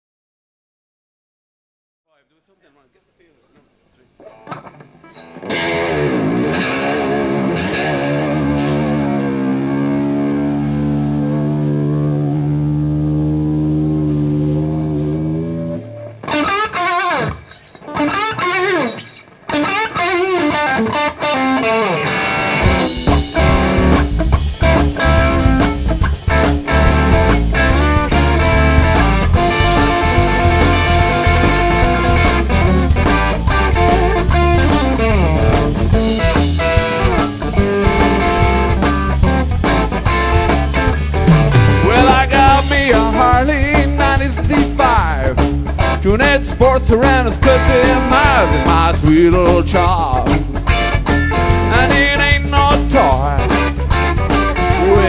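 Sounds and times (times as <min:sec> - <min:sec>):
drums: 0:03.6 - 0:12.5, 0:22.0 - 0:55.0
distorted electric guitar: 0:03.6 - 0:55.0
bass guitar: 0:04.2 - 0:55.0.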